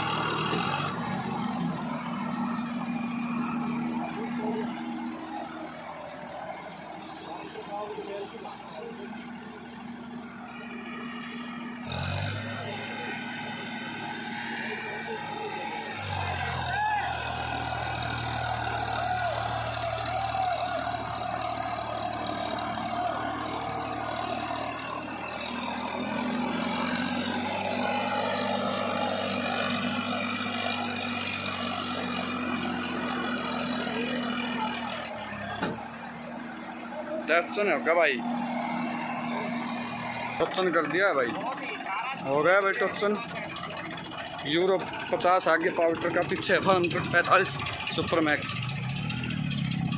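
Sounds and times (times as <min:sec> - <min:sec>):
tractor diesel engine straining: 0:00.0 - 0:49.9.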